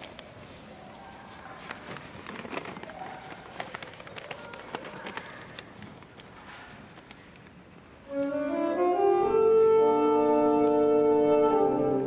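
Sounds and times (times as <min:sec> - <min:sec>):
faint murmur of voices: 0:00.0 - 0:12.0.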